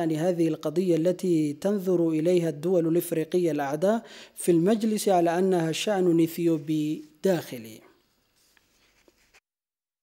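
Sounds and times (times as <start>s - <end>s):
faint background hiss: 0.0s - 9.4s.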